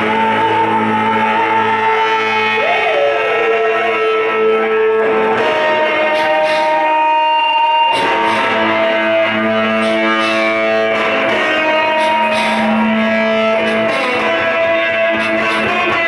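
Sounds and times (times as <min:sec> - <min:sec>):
distorted electric guitar: 0:00.0 - 0:16.0
garage-blues rock band playing: 0:00.0 - 0:16.0.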